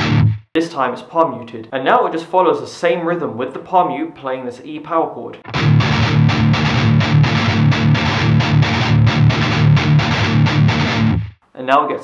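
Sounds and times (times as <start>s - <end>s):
distorted electric guitar strumming: 0.0s - 0.5s, 5.4s - 11.4s.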